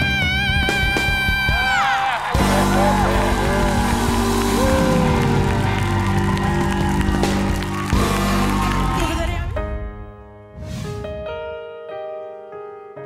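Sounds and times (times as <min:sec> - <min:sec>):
live band playing: 0:00.0 - 0:09.5
audience cheering and applauding: 0:01.3 - 0:09.6.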